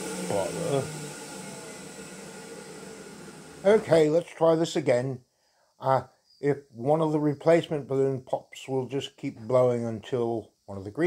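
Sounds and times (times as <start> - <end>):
electric balloon inflator running: 0.0 - 4.3.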